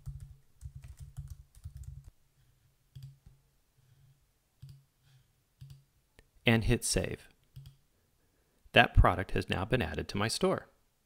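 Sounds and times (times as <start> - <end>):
typing on keyboard: 0.0 - 2.1, 3.0 - 3.2, 7.5 - 7.8.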